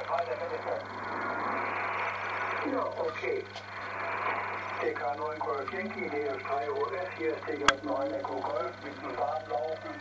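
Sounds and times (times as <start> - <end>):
low hum: 0.0 - 9.2
radio hiss: 0.0 - 10.0.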